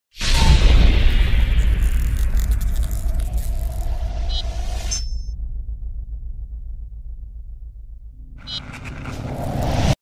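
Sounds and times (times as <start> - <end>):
whoosh and boom: 0.2 - 8.0
crackle of sparks: 0.5 - 4.1
deep steady rumble: 1.0 - 10.0.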